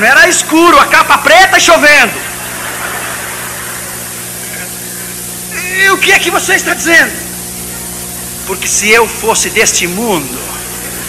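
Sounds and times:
low even hum: 0.0 - 11.0
steady hiss: 0.0 - 11.0.

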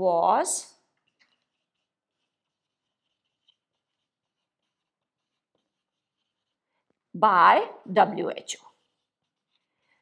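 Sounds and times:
marker scratching on whiteboard: 0.0 - 10.0.

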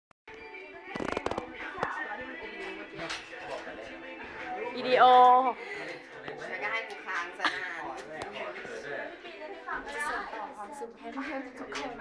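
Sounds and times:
background music: 0.3 - 12.0
sharp cracks or clicks: 0.9 - 1.9.

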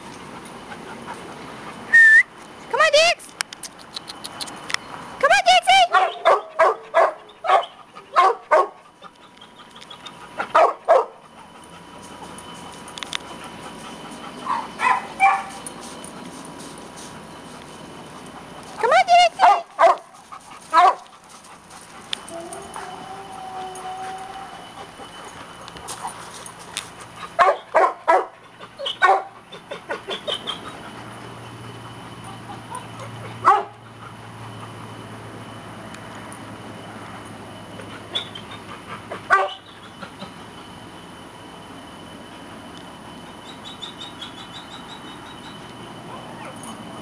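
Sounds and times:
steady low hum: 0.0 - 47.0
dog yipping: 5.9 - 8.8, 9.4 - 11.2, 14.4 - 15.6, 20.7 - 21.1, 27.3 - 30.8, 32.5 - 33.7, 38.1 - 38.6, 39.3 - 39.8, 46.2 - 46.8.

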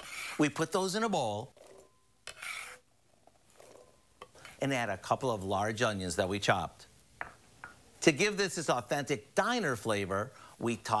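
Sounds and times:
vegetable pieces scraping on wooden board: 2.3 - 2.8.

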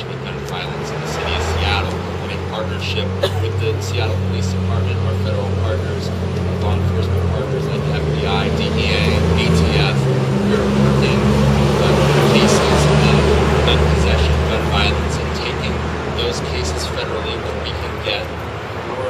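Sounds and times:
man speaking: 0.0 - 19.0
vehicle engine humming: 0.0 - 19.0.

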